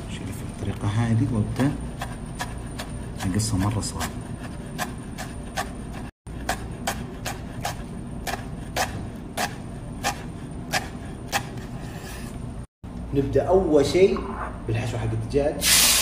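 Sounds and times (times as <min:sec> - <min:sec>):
steady low hum: 0:00.0 - 0:15.6
knife chopping on cutting board: 0:01.6 - 0:12.1.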